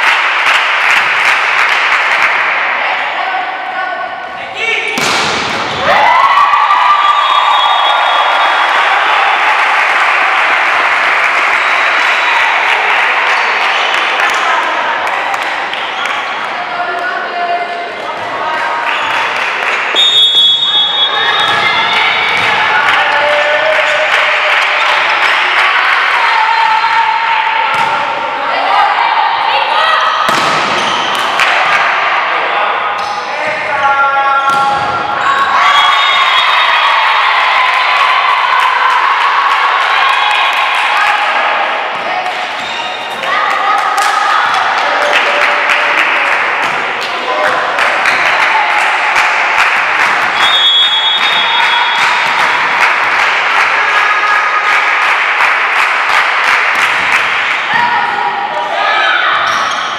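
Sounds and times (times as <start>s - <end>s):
ball slaps: 5.0s - 5.9s, 30.3s - 31.9s
people calling and shouting: 11.4s - 59.9s.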